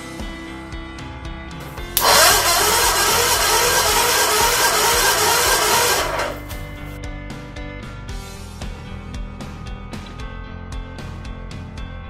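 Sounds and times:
engine cranking by starter: 1.8 - 6.9.

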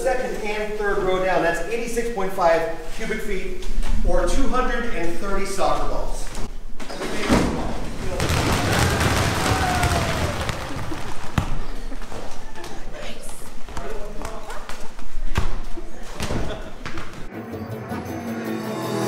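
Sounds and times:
balls bouncing on concrete floor: 8.0 - 17.3.

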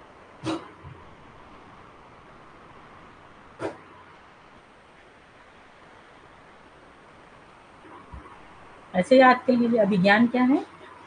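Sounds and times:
faint steady hiss: 0.0 - 11.0
short bark-like yelp: 0.4 - 0.7, 3.6 - 3.8.

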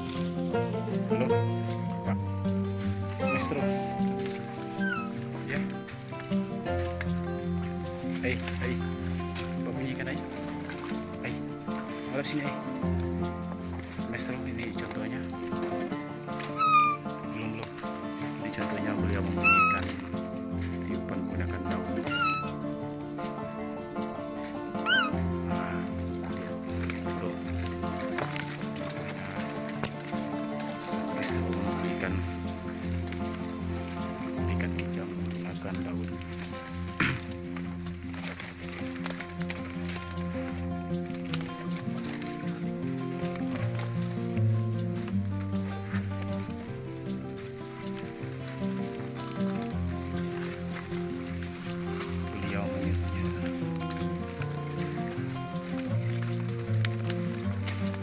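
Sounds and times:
background music: 0.0 - 58.0
leaf call: 0.0 - 58.0.

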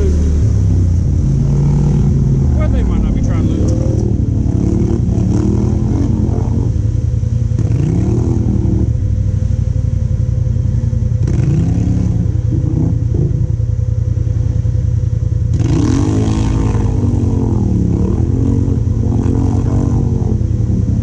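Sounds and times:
atv engine revving: 0.0 - 21.0.

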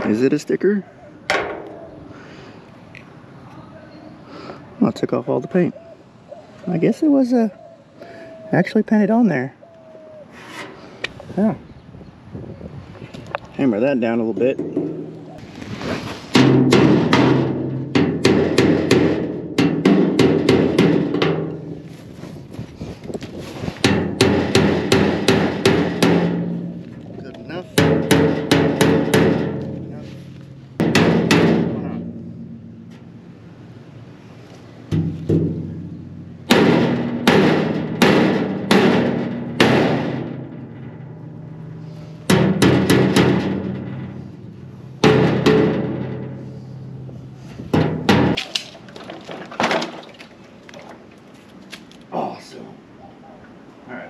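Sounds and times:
hammer striking metal: 23.9 - 26.8, 27.8 - 30.0, 36.5 - 41.1, 42.2 - 44.3, 45.0 - 46.8.

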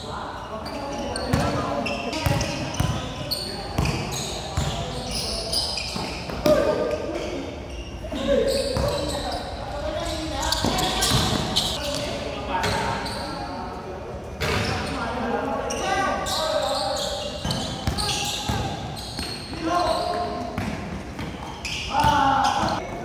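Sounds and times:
basketball bouncing on hard court: 2.2 - 3.1, 3.8 - 4.0, 10.5 - 11.7.

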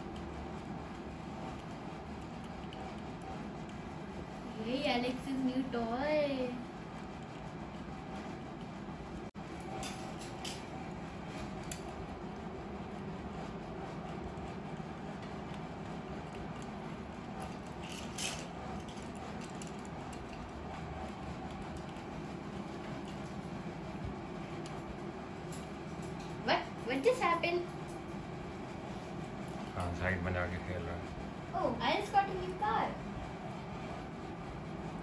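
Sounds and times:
low room hum: 0.0 - 35.0.

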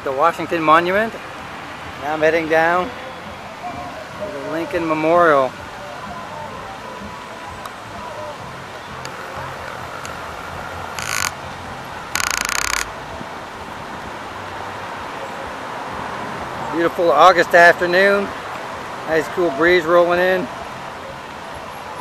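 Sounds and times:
fountain water rushing: 0.0 - 22.0
murmur of voices: 0.0 - 22.0.

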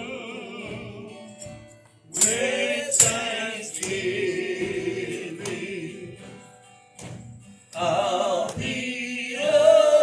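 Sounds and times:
person singing gospel song: 0.0 - 6.4, 7.8 - 10.0
acoustic guitar: 0.0 - 10.0.

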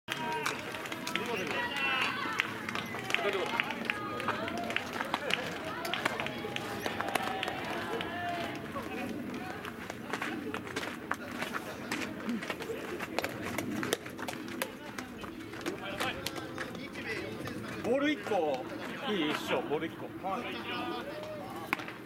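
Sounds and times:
players calling out and chattering: 0.1 - 22.0.

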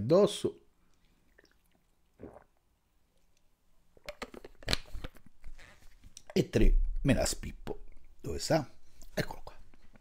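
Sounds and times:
person swallowing water: 1.3 - 2.7
plastic bottle crackling and clicking: 4.0 - 6.4.

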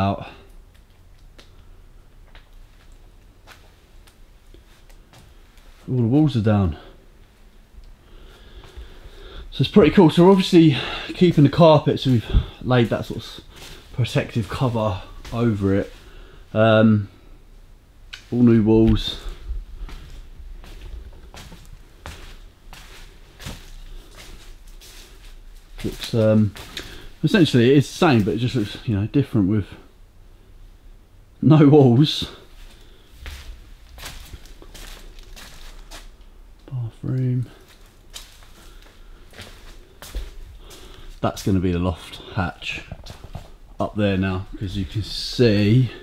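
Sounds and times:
faint low rumble: 0.4 - 31.5
soft footsteps on sheeting: 2.3 - 17.2, 18.1 - 28.8, 32.1 - 46.0.

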